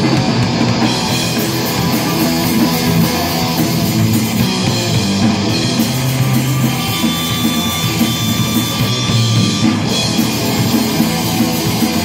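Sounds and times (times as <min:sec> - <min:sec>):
distorted electric guitar: 0:00.0 - 0:12.0
drum kit: 0:00.0 - 0:12.0
electric bass: 0:00.0 - 0:12.0.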